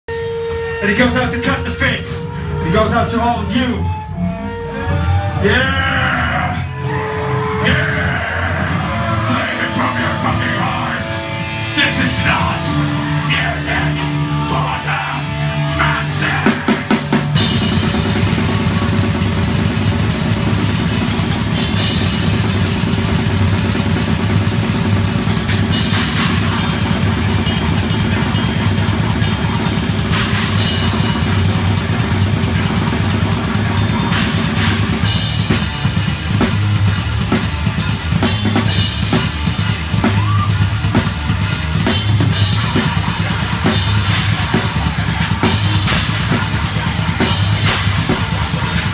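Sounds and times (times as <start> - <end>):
distorted guitar: 0.1 - 48.9
grindcore band playing live: 0.1 - 48.9
drum kit: 6.8 - 48.9
loud drum hit: 16.7 - 48.9.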